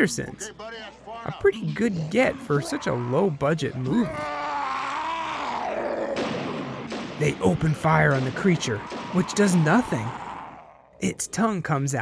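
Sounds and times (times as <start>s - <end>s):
monster roaring: 1.6s - 6.5s, 8.6s - 11.0s.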